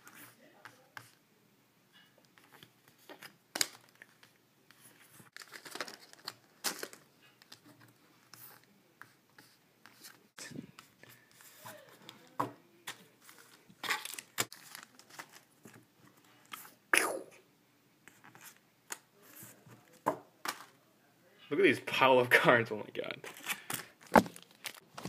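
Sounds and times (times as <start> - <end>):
wrapper tearing: 5.3 - 7.0, 13.8 - 15.5, 23.3 - 25.0.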